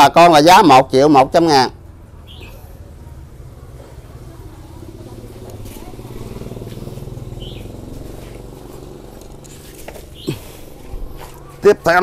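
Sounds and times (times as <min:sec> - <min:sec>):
vehicle engine passing: 0:01.7 - 0:12.0.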